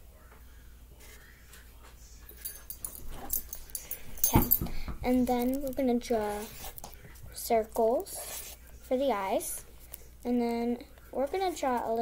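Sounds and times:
marker squeaking on paper: 6.1 - 7.0, 7.8 - 8.7.

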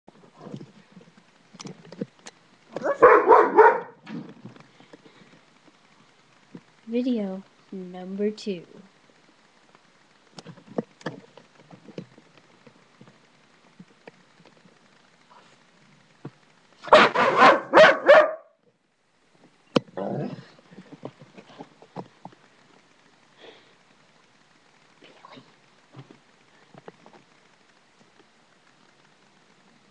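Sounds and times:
faint clicks and rustles: 0.1 - 3.0, 3.6 - 7.7, 8.7 - 16.8, 18.6 - 29.9
dog barking: 2.8 - 4.0, 16.8 - 18.5.

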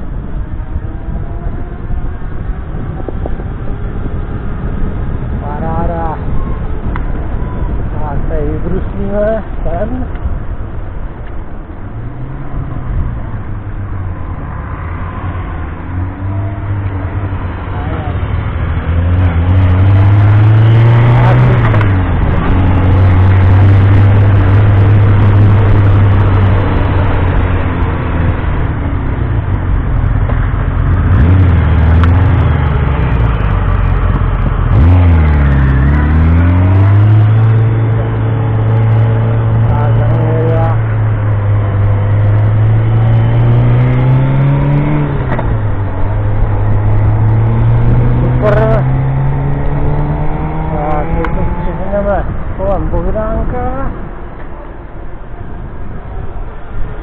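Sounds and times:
wind noise rushing: 0.0 - 54.3.

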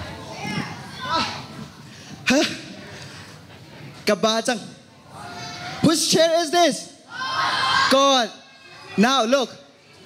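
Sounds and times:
children shouting: 7.1 - 9.1.

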